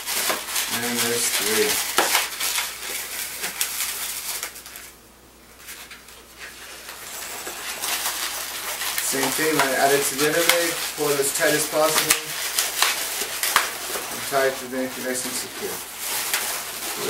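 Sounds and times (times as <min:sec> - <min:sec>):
latex balloon crackly rubbing: 0:00.0 - 0:05.0, 0:05.6 - 0:17.0.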